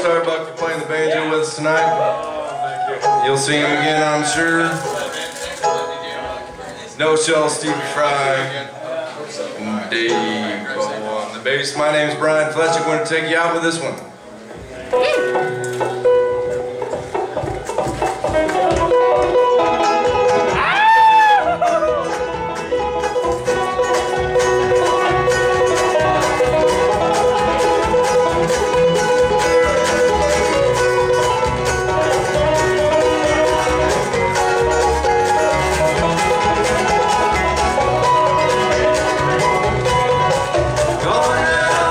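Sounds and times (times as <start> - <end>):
bluegrass band playing: 0.0 - 41.9.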